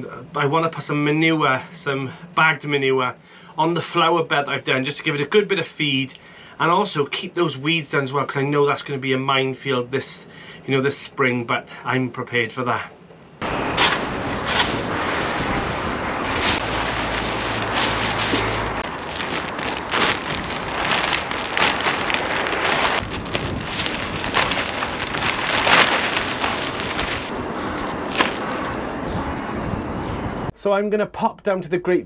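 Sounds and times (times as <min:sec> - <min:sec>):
manure crackling and rustling: 0:13.4 - 0:29.4
deep rumble: 0:13.4 - 0:30.5
wind buffeting microphone: 0:13.4 - 0:30.5.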